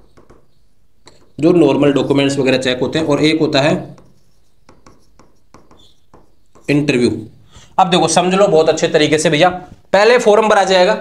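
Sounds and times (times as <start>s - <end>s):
marker pen writing on whiteboard: 0.0s - 9.0s.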